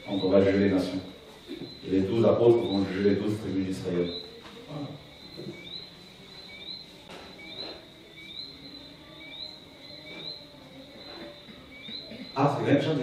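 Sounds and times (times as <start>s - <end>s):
faint high-pitched drone: 0.0s - 13.0s
small animals chirping: 0.0s - 13.0s.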